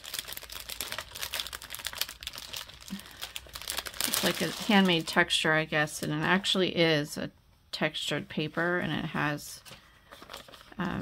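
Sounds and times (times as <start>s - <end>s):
plastic bag crinkling: 0.0s - 5.4s, 10.1s - 11.0s.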